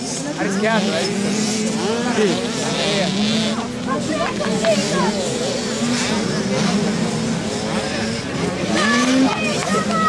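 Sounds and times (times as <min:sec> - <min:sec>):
dirt bike engines running: 0:00.0 - 0:10.0
people's voices: 0:00.0 - 0:10.0.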